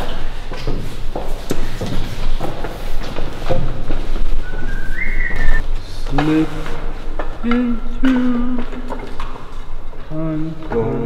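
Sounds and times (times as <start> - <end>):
knocks and footfalls: 0.0 - 10.1
two-note whistle: 4.4 - 5.6.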